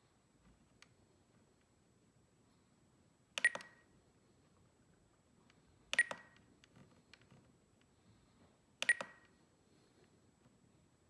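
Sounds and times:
transmitter short beeps: 3.4s - 3.8s.

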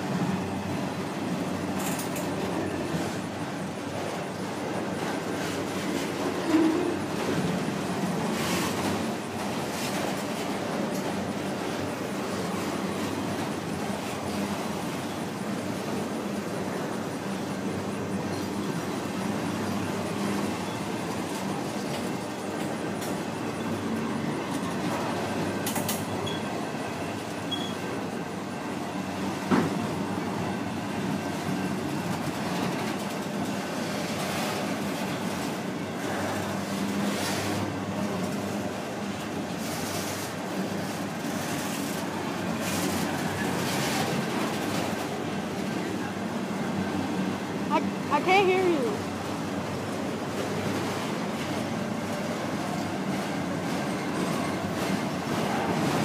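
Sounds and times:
freight train wheels rumbling on rail: 0.0s - 56.0s.

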